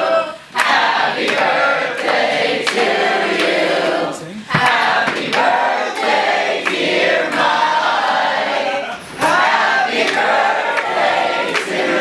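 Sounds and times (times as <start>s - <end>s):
group of voices singing: 0.0s - 12.0s
hand claps: 0.6s - 3.6s, 4.5s - 7.6s, 9.2s - 12.0s.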